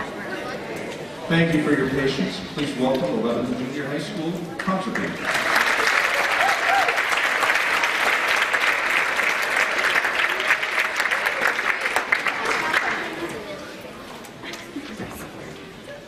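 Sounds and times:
audience applauding: 4.8s - 13.4s.

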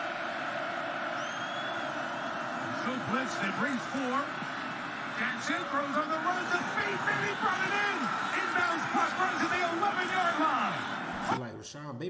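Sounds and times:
crowd roar: 0.0s - 11.4s
faint thin whistle: 1.2s - 1.9s.

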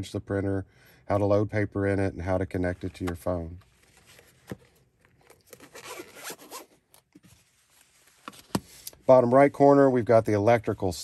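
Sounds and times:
zipper being pulled shut: 5.5s - 6.8s.

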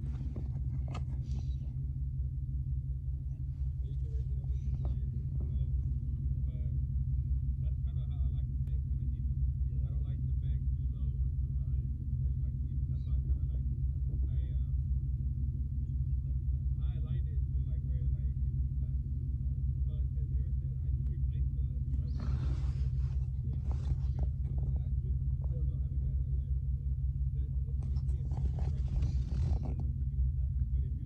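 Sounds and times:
car engine idling: 0.0s - 31.0s.

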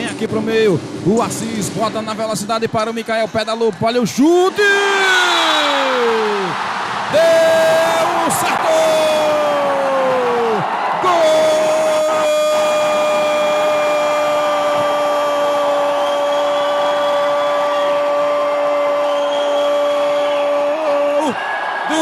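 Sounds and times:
man's drawn-out goal cry: 7.1s - 22.0s.

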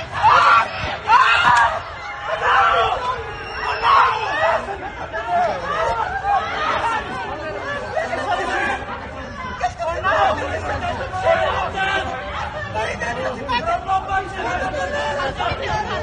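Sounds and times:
people talking and calling out: 0.0s - 16.0s.

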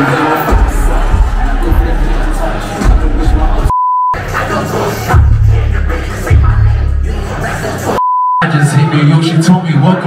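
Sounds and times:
live hip-hop with heavy bass: 0.0s - 8.6s
censor bleep: 3.7s - 4.2s, 8.0s - 8.4s.

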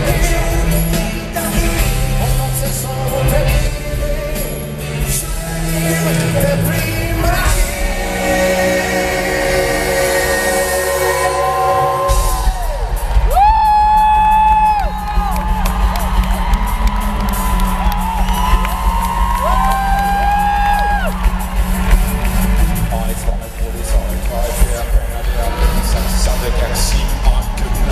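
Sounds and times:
live pop band music: 0.0s - 27.9s.

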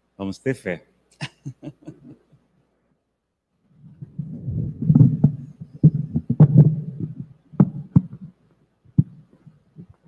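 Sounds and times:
microphone handling thumps: 3.7s - 10.0s
sharp clicks and knocks: 4.8s - 10.0s.

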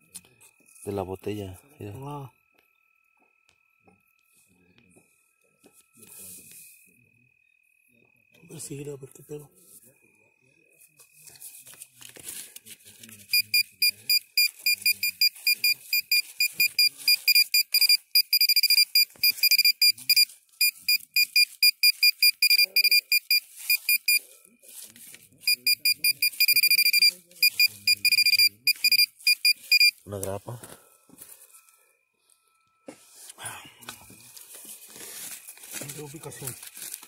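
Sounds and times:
metal detector beeping: 0.0s - 2.7s, 13.3s - 24.3s, 25.4s - 32.9s.

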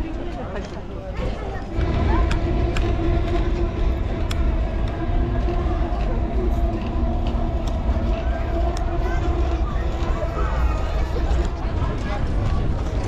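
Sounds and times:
faint crowd voices: 0.0s - 13.0s
wind rumbling on microphone: 0.0s - 13.0s
steady droning hum: 1.6s - 13.0s.

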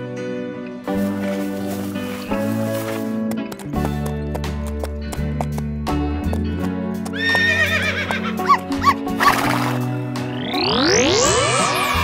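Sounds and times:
horse whinny: 7.2s - 9.7s
long rising pitch glide: 10.1s - 12.0s.

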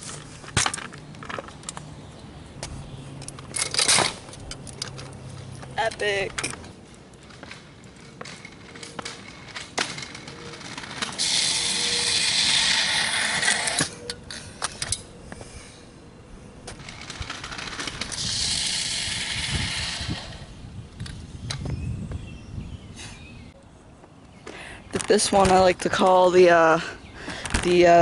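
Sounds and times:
scooter wheels rolling on asphalt: 0.0s - 22.6s, 24.0s - 28.0s.

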